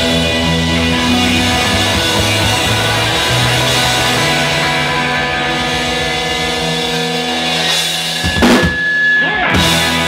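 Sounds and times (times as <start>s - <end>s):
rock band sustained chords: 0.0s - 10.0s
crashing drum and cymbal hit: 7.4s - 8.9s.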